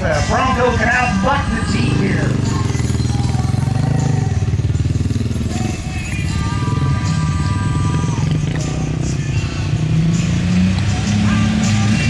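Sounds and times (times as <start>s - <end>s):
car engines idling: 0.0s - 12.0s.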